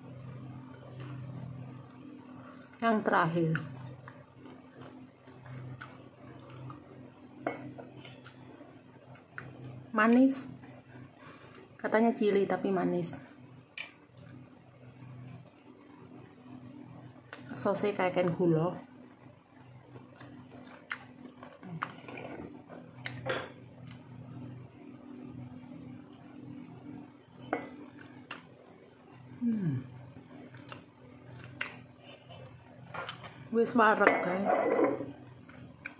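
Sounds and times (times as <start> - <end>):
faint low hum: 0.0 - 35.9.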